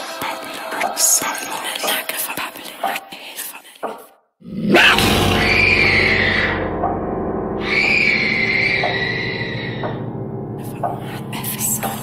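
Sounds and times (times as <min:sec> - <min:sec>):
gritty creature-like scream: 0:04.4 - 0:06.8.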